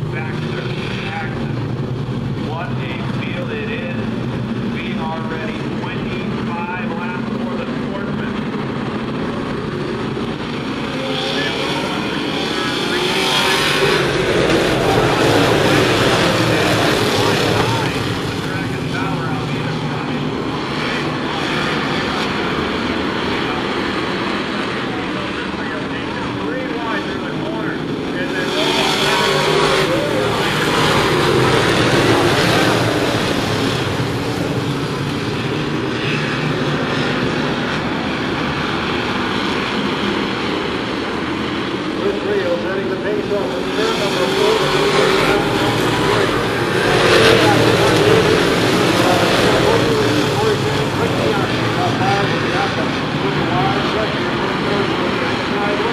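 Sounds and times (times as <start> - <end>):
stock car engines racing: 0.0 - 55.9.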